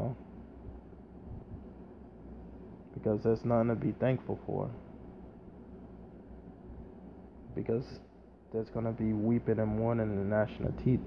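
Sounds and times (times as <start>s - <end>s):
low hum with light hiss: 0.0s - 11.0s.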